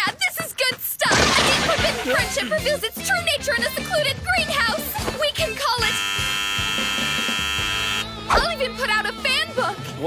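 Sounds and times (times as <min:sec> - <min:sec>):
electronic buzzer: 0:05.8 - 0:08.2.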